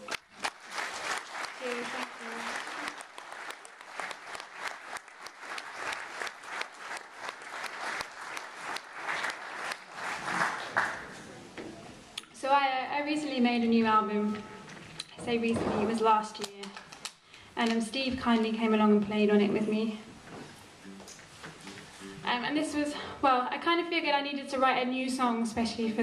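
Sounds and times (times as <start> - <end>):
audience applause: 0.0 - 11.3
guitar and mandolin notes: 20.7 - 23.0.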